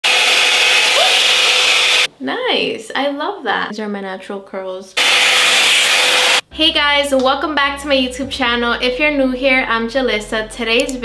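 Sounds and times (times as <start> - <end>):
hot-air styler blowing air: 0.0 - 2.1, 5.0 - 6.5.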